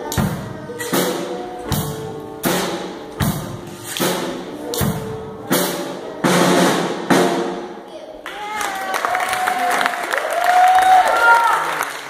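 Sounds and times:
band playing drums and keyboard: 0.0s - 7.7s
drum and cymbal hits: 0.0s - 7.7s.

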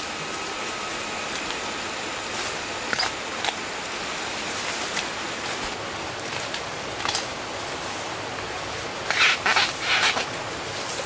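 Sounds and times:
background hiss: 0.0s - 11.0s
rustling vegetation: 0.0s - 11.0s
bamboo stalks snapping: 4.7s - 7.3s.

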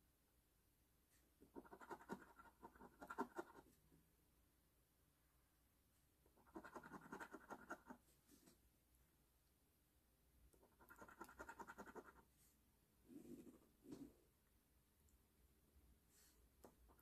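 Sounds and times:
scratching lottery ticket: 1.6s - 3.6s, 6.4s - 8.0s, 10.7s - 12.2s.

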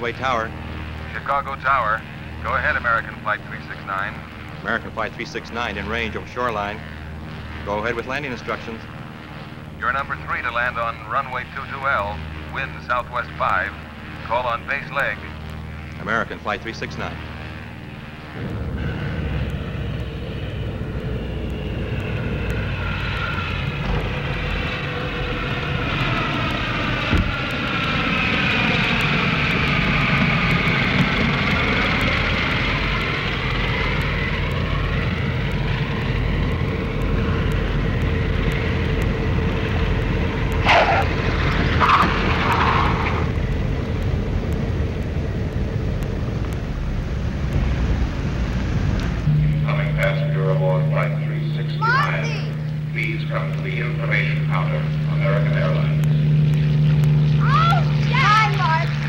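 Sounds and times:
propeller engines droning: 0.0s - 59.0s.

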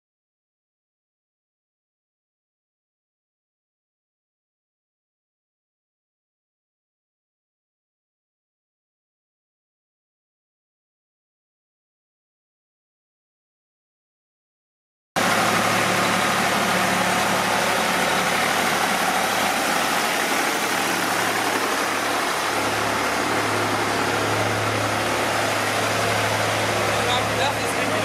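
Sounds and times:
tractor engine running: 15.2s - 28.0s.

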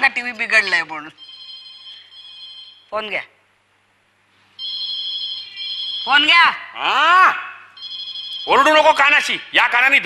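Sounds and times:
telephone ringing: 0.6s - 2.9s, 4.6s - 6.3s, 7.8s - 9.2s.

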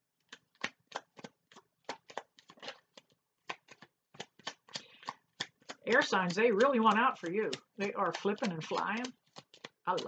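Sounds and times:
cards being shuffled: 0.2s - 10.0s.

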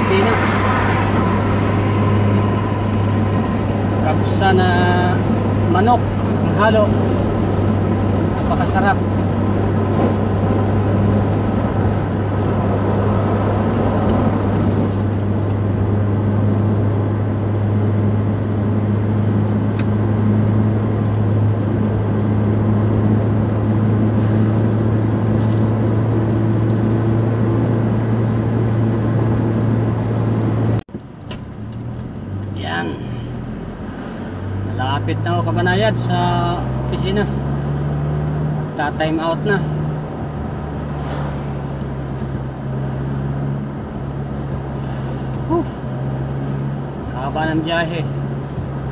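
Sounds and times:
car driving from inside cabin: 0.0s - 48.9s.

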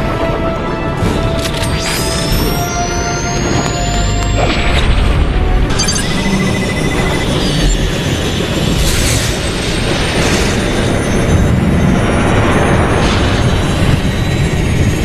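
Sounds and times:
music: 0.0s - 15.0s
booming energy blast: 1.0s - 15.0s.

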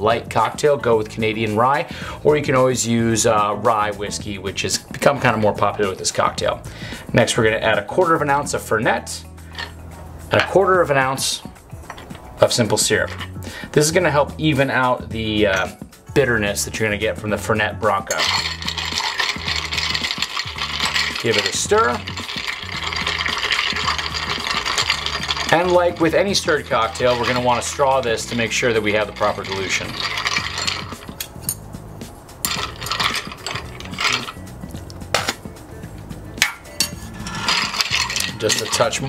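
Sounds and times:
low background music: 0.0s - 39.0s
spoon stirring ice in glass: 18.0s - 31.6s, 32.4s - 34.8s, 36.4s - 39.0s.

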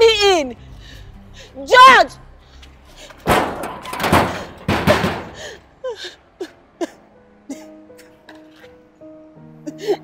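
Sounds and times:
bangs on metal gate: 3.2s - 5.6s.

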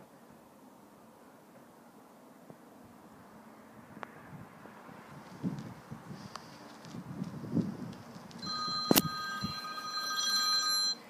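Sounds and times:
electronic ringing tone: 8.4s - 11.0s.

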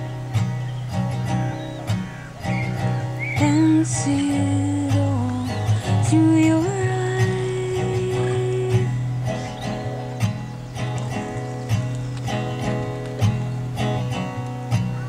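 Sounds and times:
acoustic guitar strumming: 0.0s - 15.0s.

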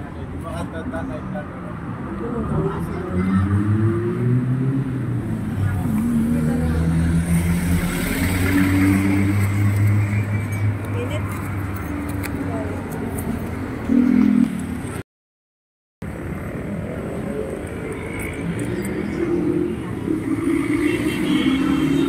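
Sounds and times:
vehicles passing on road: 0.0s - 15.0s, 16.0s - 22.0s.

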